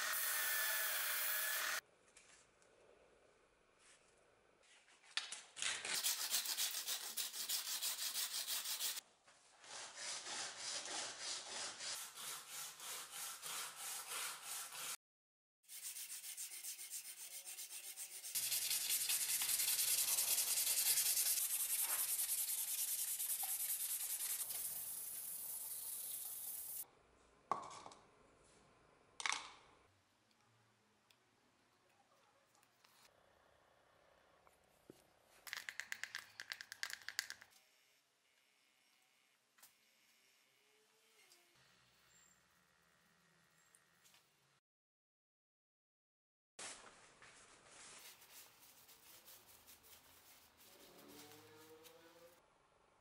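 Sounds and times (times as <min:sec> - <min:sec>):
sanding belt rasping: 0:06.0 - 0:09.0, 0:15.7 - 0:26.8.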